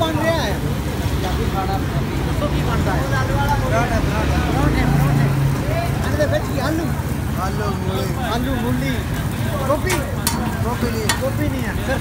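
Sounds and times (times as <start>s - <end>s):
indistinct chatter of voices: 0.0s - 12.0s.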